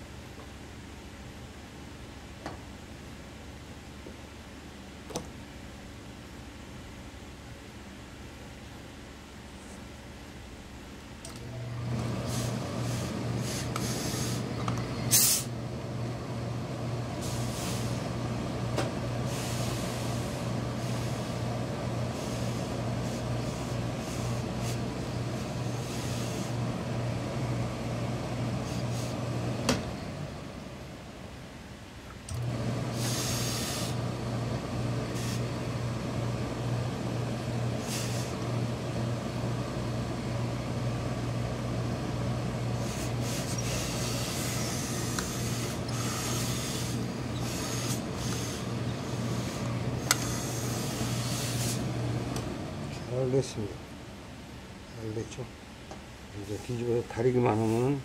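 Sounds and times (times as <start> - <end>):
steady machine hum: 0.0 - 58.0
steam iron hissing: 12.1 - 15.6, 17.2 - 18.2, 19.2 - 21.5, 22.1 - 26.7, 28.6 - 29.4, 32.8 - 34.1, 35.0 - 35.6, 37.7 - 38.4, 42.7 - 52.9.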